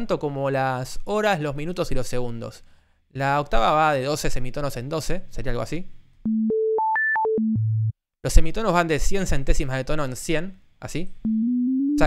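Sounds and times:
pure sine tone: 11.3s - 12.0s.

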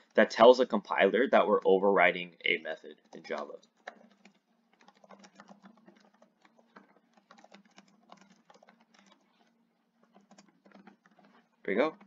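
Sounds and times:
keyboard typing clicks: 2.9s - 12.0s.

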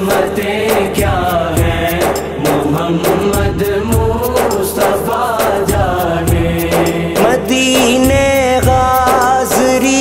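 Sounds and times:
steady rhythmic beat: 0.0s - 10.0s
wordless chanted vocal melody: 0.0s - 10.0s.

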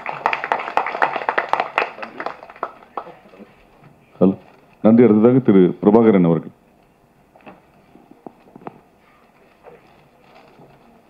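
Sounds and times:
audience applauding: 0.0s - 3.5s.

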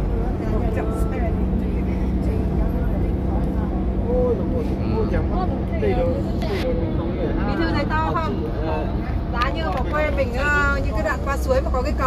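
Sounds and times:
van cabin road rumble: 0.0s - 12.0s.

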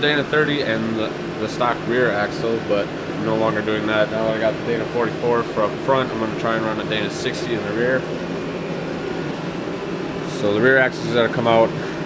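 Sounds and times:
heater fan blowing: 0.0s - 12.0s.

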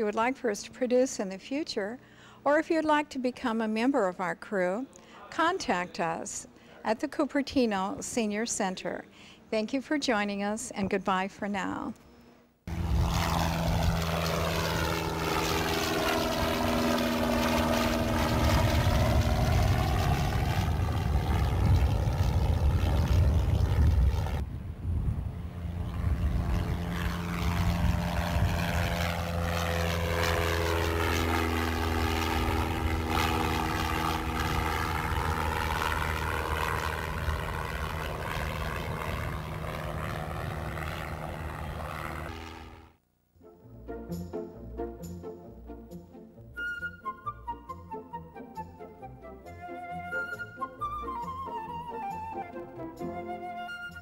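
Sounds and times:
propeller airplane droning: 0.0s - 2.9s, 12.0s - 43.0s, 43.8s - 54.0s.

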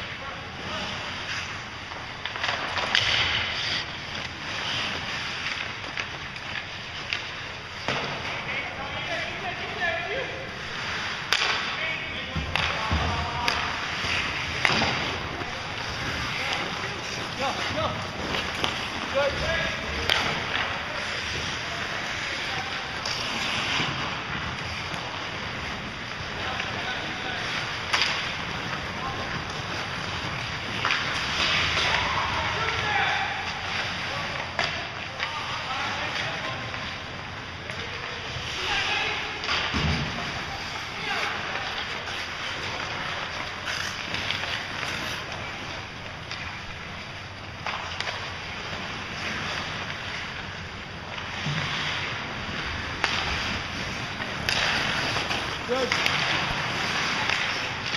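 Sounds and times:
hockey sticks and puck clacking: 0.0s - 57.9s
rink background noise: 0.0s - 57.9s
skates scraping on ice: 0.0s - 57.9s.

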